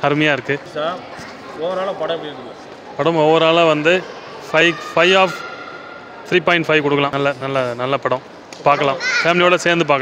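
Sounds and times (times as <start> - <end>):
man talking: 6.3 - 10.0.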